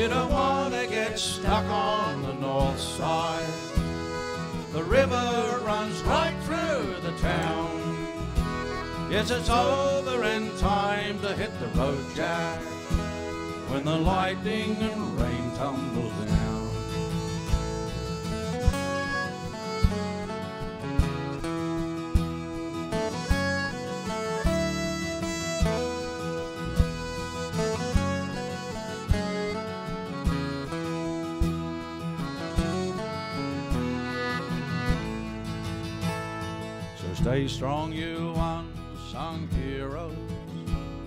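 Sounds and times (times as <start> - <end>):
bass: 0.0 - 41.0
lead acoustic guitar melody: 0.0 - 41.0
strummed acoustic guitar: 0.0 - 41.0.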